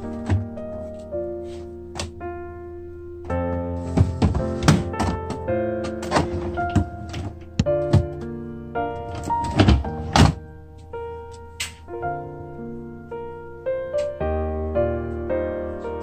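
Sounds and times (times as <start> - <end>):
piano music: 0.0 - 16.0
plastic freezer drawers thunking: 3.8 - 8.2, 9.0 - 10.4.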